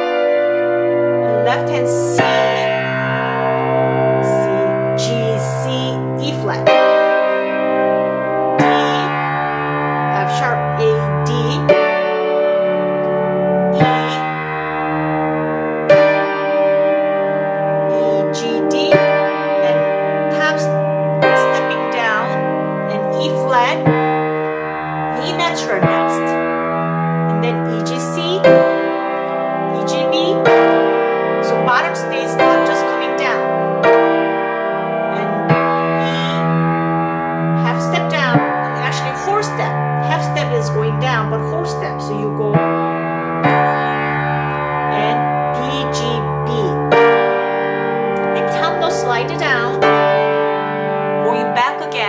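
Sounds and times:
piano playing slow chords: 0.0s - 52.0s.

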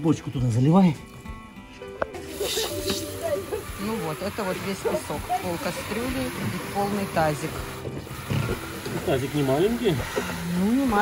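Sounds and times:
hose water spraying into metal pot: 2.1s - 11.0s.

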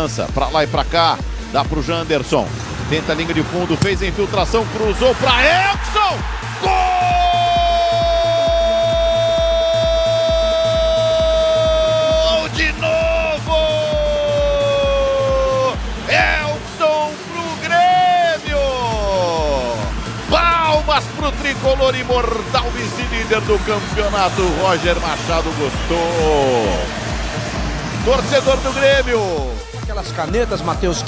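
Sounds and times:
background music with steady beat: 0.0s - 31.0s
commentator's drawn-out goal cry: 4.9s - 16.6s.

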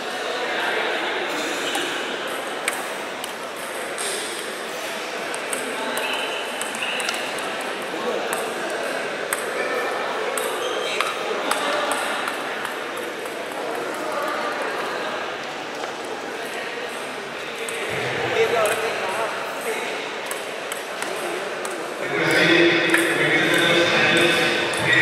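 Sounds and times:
murmur of voices: 0.0s - 25.0s.

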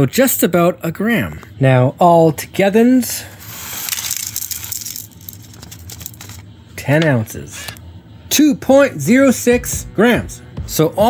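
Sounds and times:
paper rustling: 3.3s - 6.5s
gold nuggets clicking into plastic tray: 3.8s - 6.3s.

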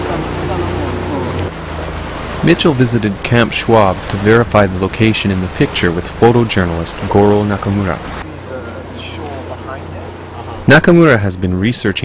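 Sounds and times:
boat engine humming: 0.0s - 12.0s
outdoor background noise: 0.0s - 12.0s.

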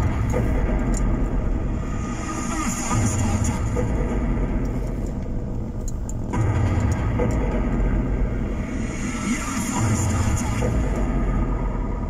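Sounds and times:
road rumble inside car: 0.0s - 8.5s
car engine: 0.0s - 12.0s.

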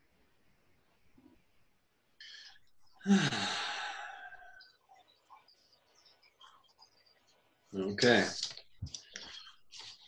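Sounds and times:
person sighing: 3.0s - 4.5s.

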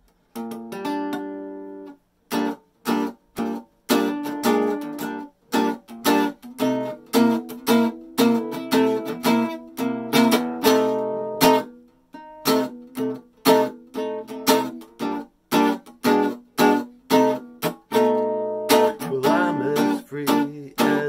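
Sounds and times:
acoustic guitar strumming chords: 0.3s - 21.0s.

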